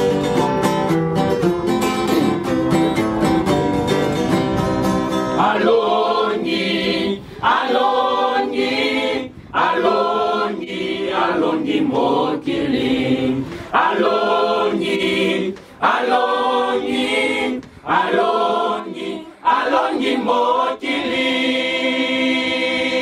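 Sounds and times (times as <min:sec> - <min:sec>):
choir of young voices singing: 0:05.4 - 0:23.0.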